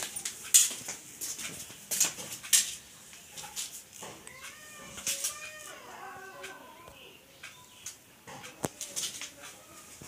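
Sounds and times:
cat meowing: 4.3 - 6.8.

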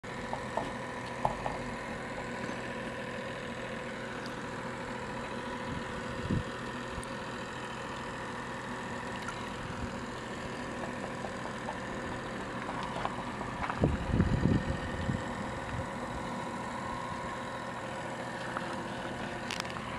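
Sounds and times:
steady machine hum: 0.0 - 19.9.

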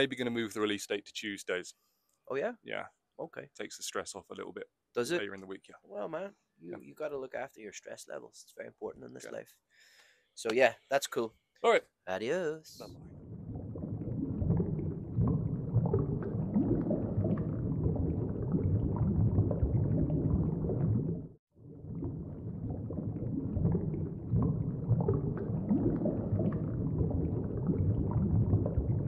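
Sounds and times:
liquid bubbling: 12.8 - 29.0.

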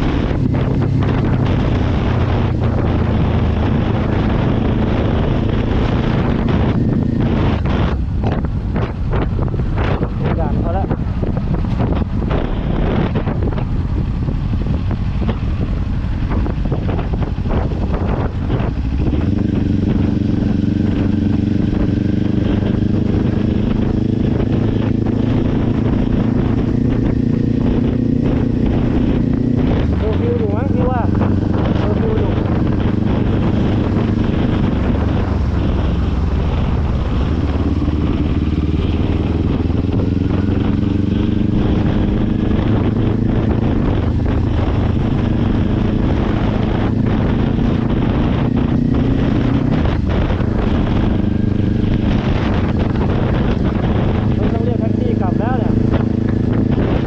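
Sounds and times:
motorcycle engine running: 0.0 - 57.0
wind buffeting microphone: 0.0 - 57.0.

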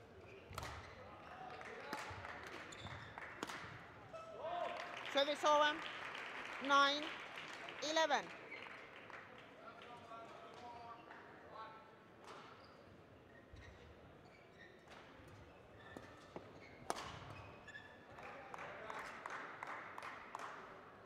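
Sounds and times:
faint shoe squeaks: 0.1 - 1.5, 2.7 - 3.2, 12.4 - 18.1.

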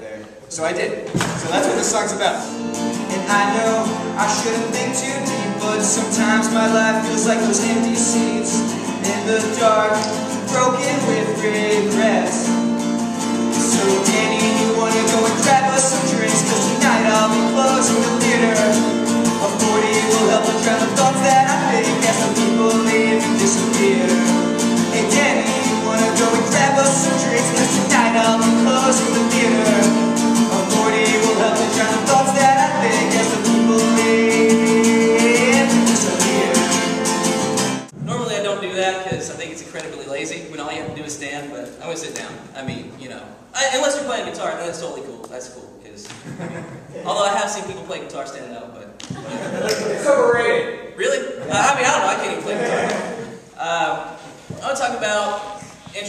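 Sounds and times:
acoustic guitar strumming: 1.3 - 39.5
man singing: 2.5 - 12.7, 13.3 - 39.3.

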